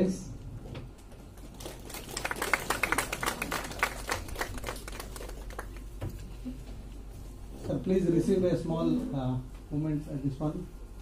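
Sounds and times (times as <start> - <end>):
audience clapping: 1.3 - 6.4.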